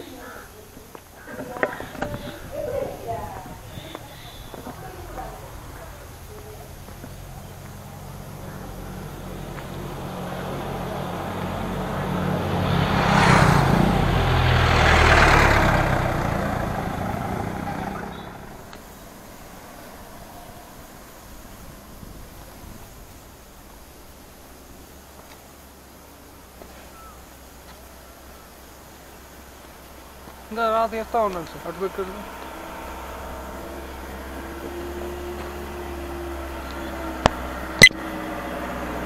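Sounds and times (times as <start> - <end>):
outdoor background noise: 0.0 - 39.0
vehicle engine and road noise: 0.0 - 39.0.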